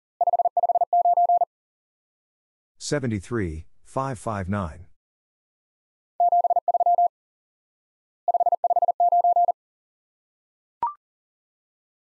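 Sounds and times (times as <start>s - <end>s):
morse code tone: 0.2s - 1.5s, 6.2s - 7.1s, 8.3s - 9.6s.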